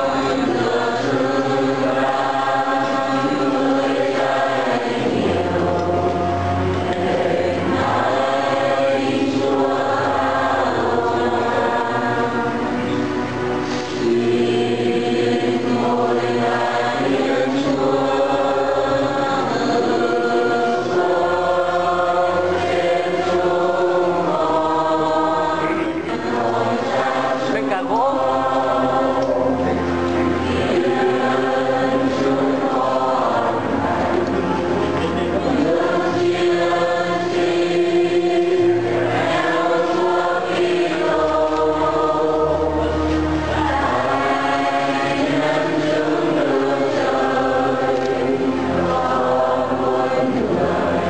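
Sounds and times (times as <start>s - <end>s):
choir singing a hymn: 0.0s - 51.0s.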